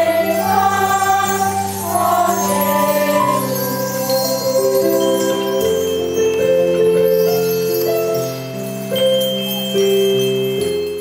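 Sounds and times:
children's choir singing: 0.0 - 6.1.

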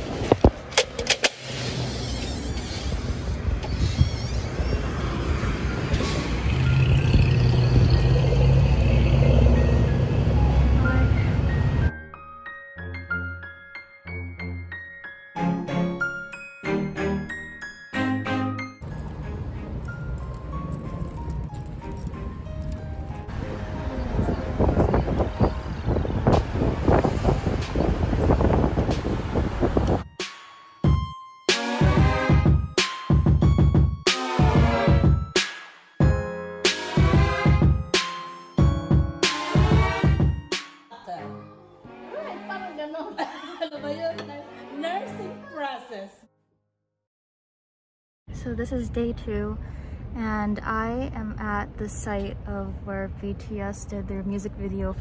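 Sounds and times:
cars passing: 4.6 - 11.9, 18.8 - 30.0
background music: 8.2 - 25.9, 30.0 - 46.3
background music with percussive beat: 30.1 - 40.9.

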